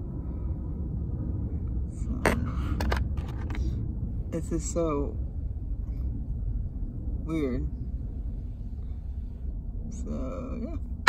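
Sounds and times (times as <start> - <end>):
steady low rumble: 0.0 - 11.0.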